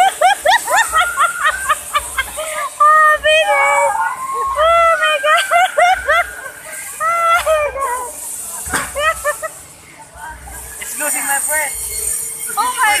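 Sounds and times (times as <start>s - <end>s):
woman laughing and shrieking: 0.0s - 8.2s.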